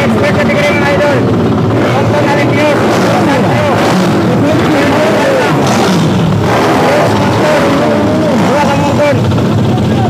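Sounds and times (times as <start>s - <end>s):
crowd voices: 0.0s - 10.0s
dirt bike engines revving: 0.0s - 10.0s.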